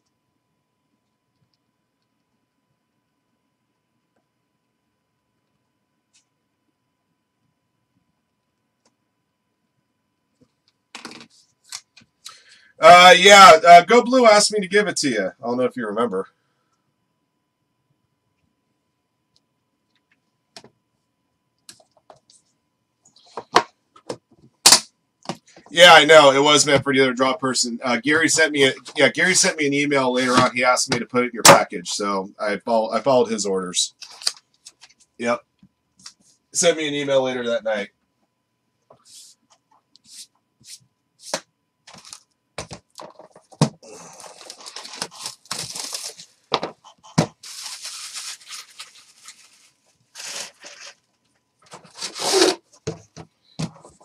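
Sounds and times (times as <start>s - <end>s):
cardboard scraping and rustling: 47.2s - 51.0s, 51.7s - 53.2s.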